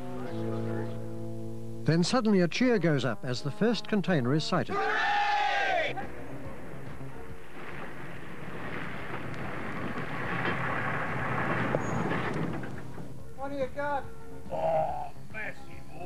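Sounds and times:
person shouting hooray: 4.7s - 6.0s
truck passing by: 6.0s - 13.2s.

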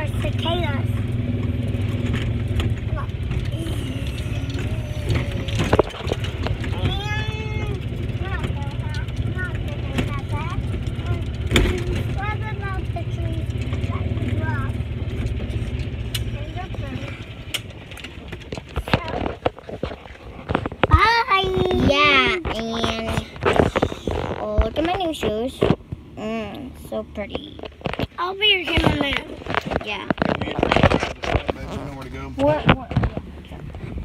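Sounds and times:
knocks and clatter: 0.0s - 26.1s, 26.8s - 34.0s
golf cart rumbling over bumps: 0.0s - 34.0s.

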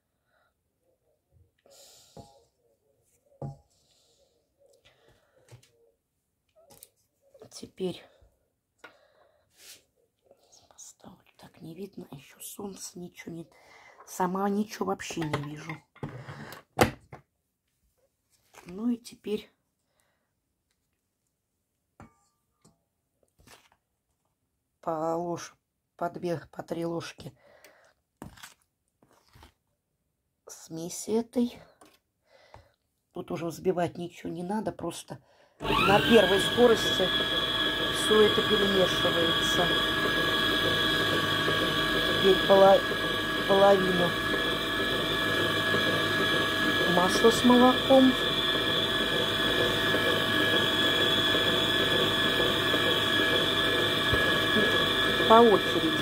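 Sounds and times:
mixer whisk clunk: 35.6s - 56.0s.

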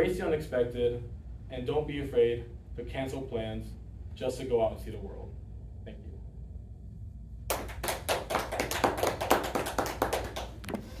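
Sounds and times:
audience clapping: 7.5s - 11.0s.

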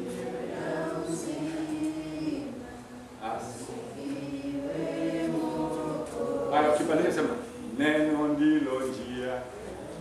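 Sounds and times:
congregation chanting: 0.0s - 8.9s.

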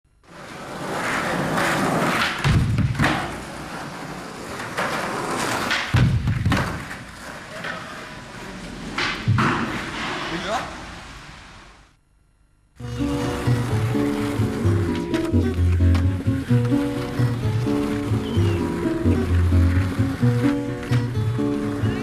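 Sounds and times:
skateboard wheels rolling: 0.2s - 11.7s, 12.8s - 22.0s
skateboard thuds: 1.6s - 3.6s, 4.6s - 7.2s, 8.9s - 10.2s, 14.9s - 18.2s, 19.0s - 21.7s.

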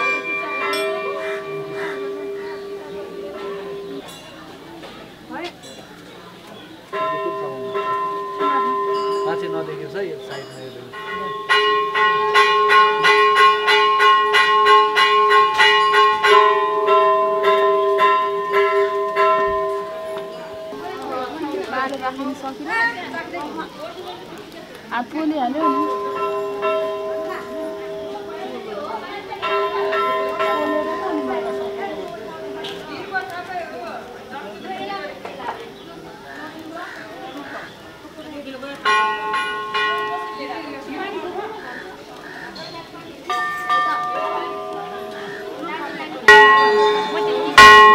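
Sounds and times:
brass bells ringing: 0.0s - 4.8s, 6.9s - 22.4s, 25.0s - 35.8s, 38.5s - 47.9s
murmur of voices: 0.0s - 47.9s.

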